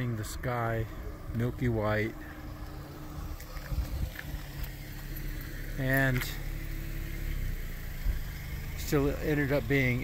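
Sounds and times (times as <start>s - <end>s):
low uneven rumble: 0.0s - 10.0s.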